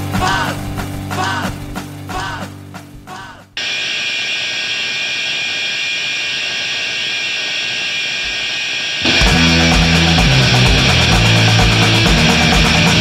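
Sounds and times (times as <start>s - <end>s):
harsh hiss with high drone: 3.6s - 13.0s.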